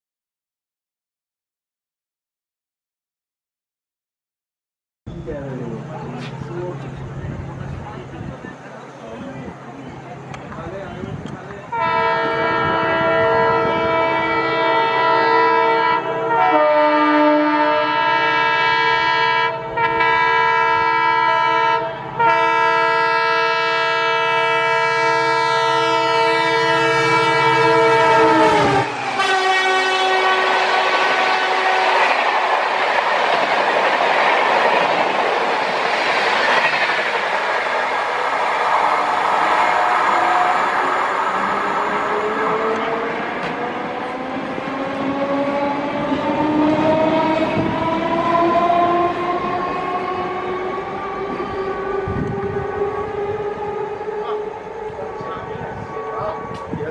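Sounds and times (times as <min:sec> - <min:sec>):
train coaches rushing and clattering: 0:05.1 - 0:16.4, 0:19.7 - 0:56.9
train horn: 0:11.7 - 0:32.3, 0:39.5 - 0:56.9.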